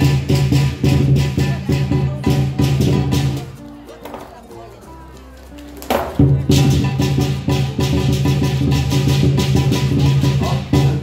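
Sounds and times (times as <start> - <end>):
music with fast steady beat: 0.0 - 3.8, 6.2 - 11.0.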